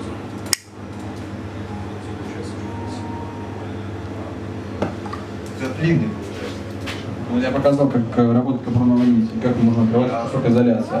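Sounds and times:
steady low hum: 0.0 - 11.0
sharp click: 0.4 - 0.7.

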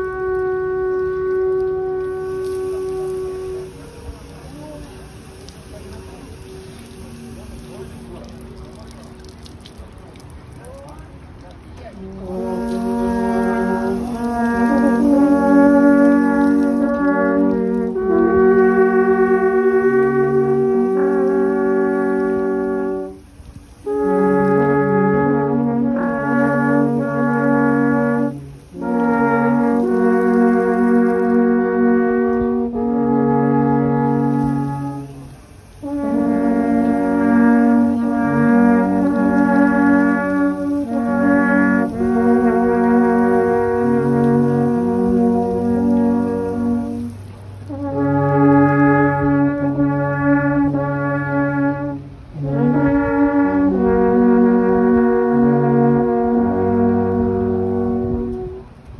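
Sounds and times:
alphorn ensemble playing chords: 0.0 - 10.6, 11.4 - 58.9.

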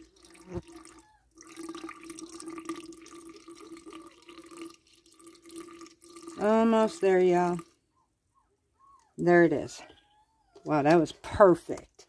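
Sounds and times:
water trickling into jar: 0.0 - 7.8.

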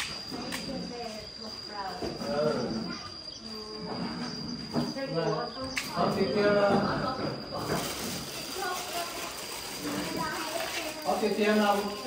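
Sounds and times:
high-pitched insect drone: 0.0 - 12.0
people talking: 0.0 - 12.0.

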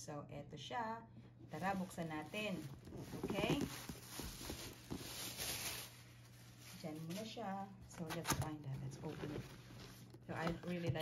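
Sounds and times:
cardboard rustling scrape: 1.6 - 7.3, 8.9 - 11.0.

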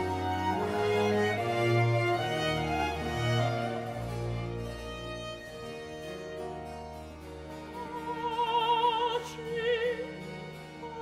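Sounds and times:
baroque orchestra playing: 0.0 - 11.0
harpsichord: 0.0 - 11.0.

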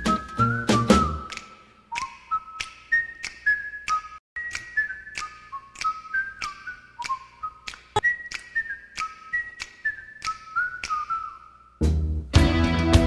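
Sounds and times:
whistled melody: 0.0 - 12.1.

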